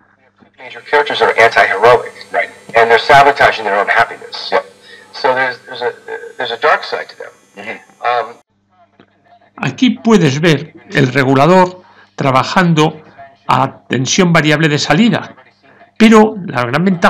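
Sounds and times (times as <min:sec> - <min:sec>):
radio speech from loudspeaker: 0:00.5 - 0:08.4.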